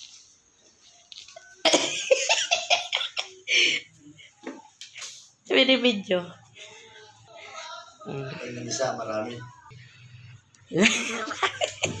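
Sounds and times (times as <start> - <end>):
woman laughing: 1.6 - 3.9, 10.7 - 12.0.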